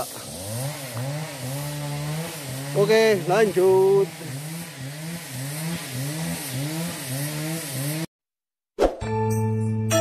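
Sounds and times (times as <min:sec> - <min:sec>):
chainsaw engine running: 0:00.0 - 0:08.1.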